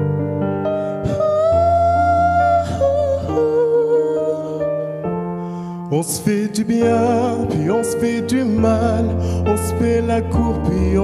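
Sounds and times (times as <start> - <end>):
instrumental backing track: 0.0 - 11.0.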